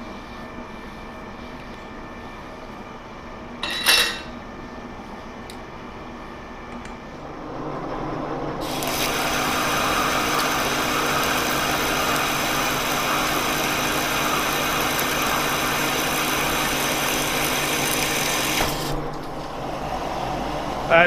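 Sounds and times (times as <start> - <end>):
lathe running hum: 0.0 - 21.0
cutting tool hissing under coolant: 8.6 - 19.0.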